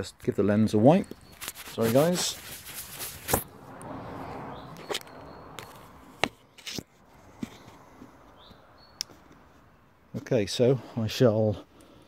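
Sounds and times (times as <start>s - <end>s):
rubbing over phone lens: 1.3s - 3.5s.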